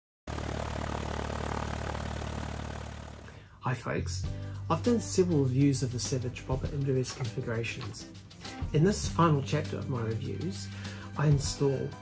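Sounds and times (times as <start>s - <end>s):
propeller aircraft engine running: 0.3s - 3.4s.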